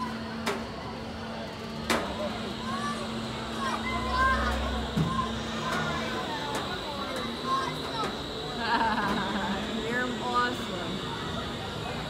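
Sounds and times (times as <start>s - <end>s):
steady high-pitched whine: 0.0s - 12.0s.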